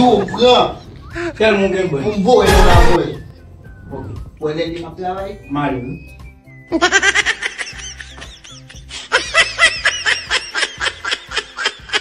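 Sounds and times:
background music with bass line: 0.0s - 12.0s
high-pitched laughter: 6.7s - 12.0s.

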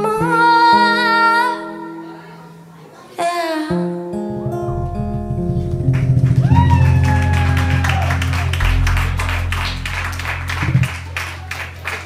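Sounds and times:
bass and acoustic guitar chord: 4.0s - 12.0s
audience clapping: 5.9s - 12.0s.

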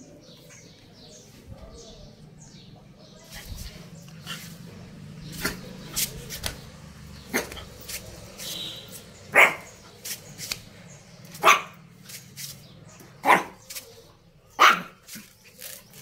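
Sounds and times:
small dog barking: 7.3s - 7.7s, 9.3s - 9.8s, 11.3s - 11.8s, 13.2s - 13.6s, 14.5s - 15.2s.

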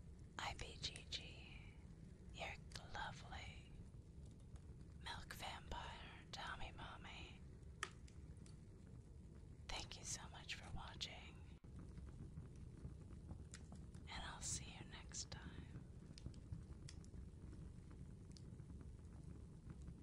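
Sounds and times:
person whispering: 0.4s - 1.7s, 2.4s - 3.7s, 5.1s - 7.4s, 9.7s - 11.4s, 14.1s - 15.7s.

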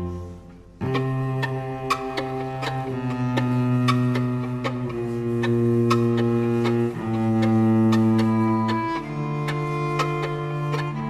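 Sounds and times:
cello bowed low note: 0.0s - 11.0s.

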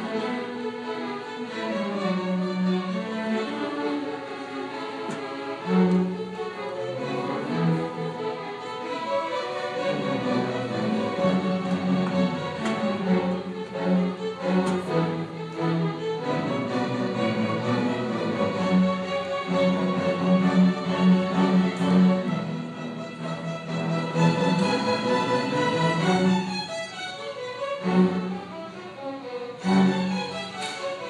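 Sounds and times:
violins playing long notes: 0.0s - 31.0s.

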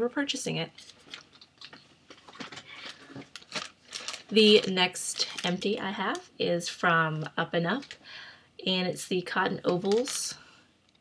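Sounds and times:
plastic packaging crinkling: 0.7s - 6.3s, 7.2s - 8.2s, 9.6s - 10.4s.

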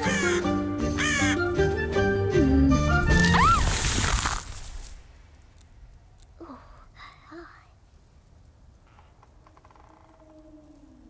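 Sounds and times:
orchestral music: 0.0s - 3.4s
snow falling whoosh: 3.0s - 5.4s.

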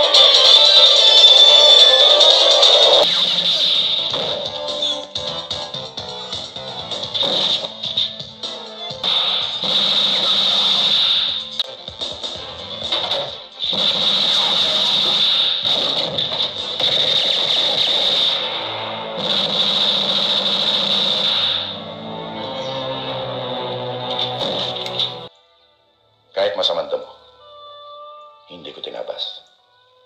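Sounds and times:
film soundtrack music: 0.0s - 29.7s.

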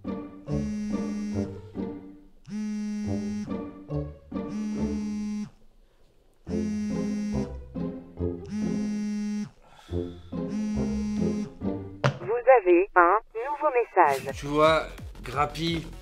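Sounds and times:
phone vibrating buzz: 0.5s - 1.6s, 2.5s - 3.6s, 4.5s - 5.6s, 6.5s - 7.6s, 8.4s - 9.6s, 10.5s - 11.6s.

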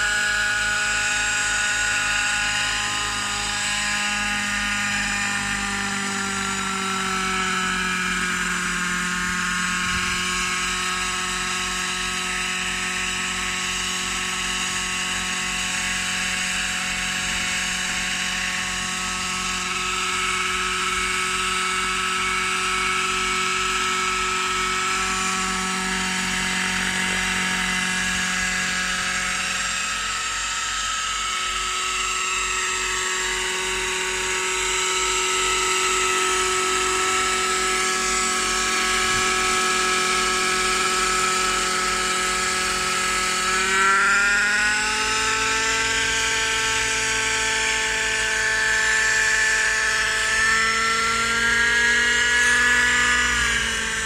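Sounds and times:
model helicopter engine whine: 0.0s - 54.0s.

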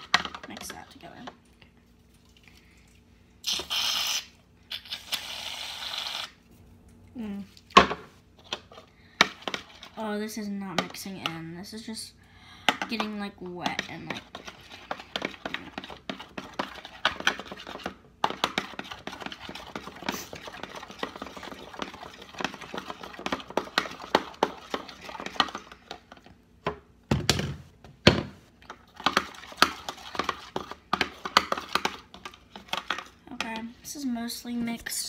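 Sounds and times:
utensil stirring slime in bowl: 0.0s - 2.6s, 8.4s - 11.8s, 12.6s - 26.4s, 28.5s - 35.0s.

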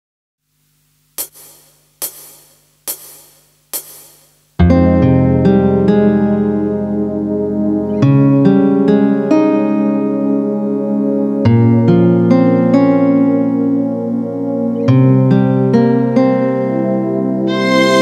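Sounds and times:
count-in clicks: 1.2s - 4.4s
sustained keyboard and guitar chords: 4.6s - 18.0s.

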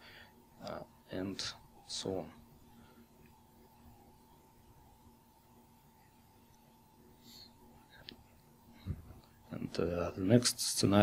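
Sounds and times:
faint steady hum: 0.0s - 11.0s
soft breath-like hiss: 7.1s - 7.7s.

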